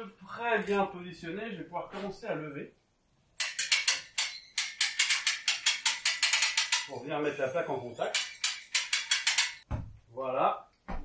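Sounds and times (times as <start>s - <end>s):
winch ratchet clicking rapidly: 3.4s - 6.9s, 8.1s - 9.6s.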